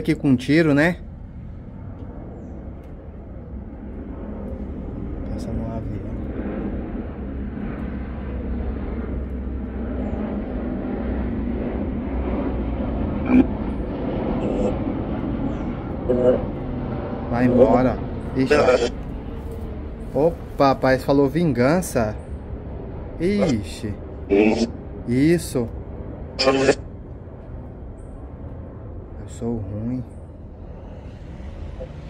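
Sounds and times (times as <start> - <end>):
radio static hiss: 14.4 - 14.8, 18.4 - 19.0, 23.3 - 23.6, 24.3 - 24.7, 26.4 - 26.8
faint broken voice fragments: 26.4 - 26.8.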